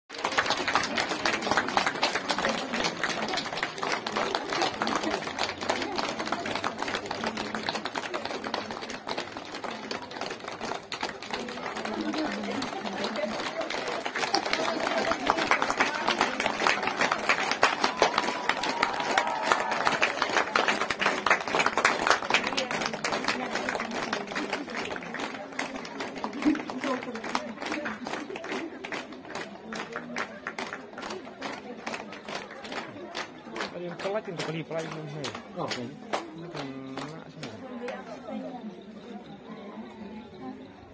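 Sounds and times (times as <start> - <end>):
crowd clapping: 0.1 - 38.3.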